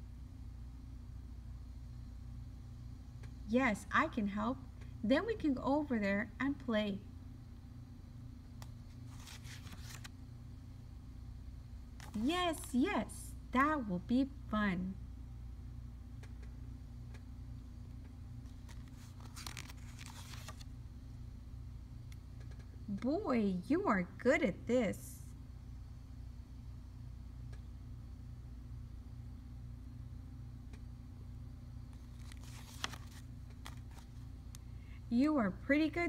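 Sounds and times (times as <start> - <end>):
steady low hum: 0.0 - 36.0
paper page turning: 8.9 - 10.2, 12.0 - 12.8, 18.4 - 20.7, 31.9 - 34.3.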